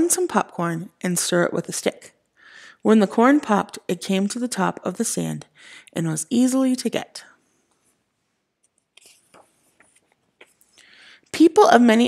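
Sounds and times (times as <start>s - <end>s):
paper page turning: 8.6s - 10.7s.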